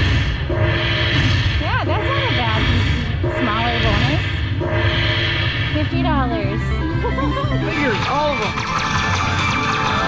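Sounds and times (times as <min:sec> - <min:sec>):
steady low hum: 0:00.0 - 0:09.2
slot machine electronic tones: 0:01.9 - 0:10.0.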